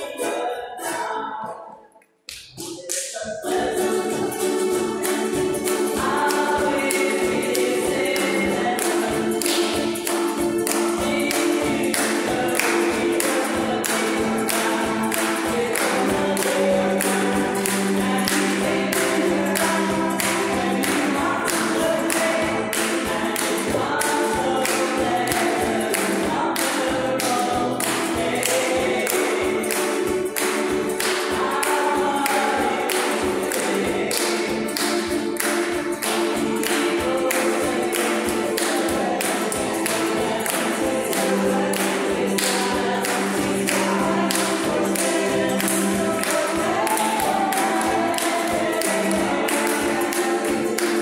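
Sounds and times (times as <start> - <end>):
group singing: 0.0 - 2.0, 2.6 - 51.0
banjo: 0.0 - 51.0
strummed ukuleles: 0.0 - 51.0.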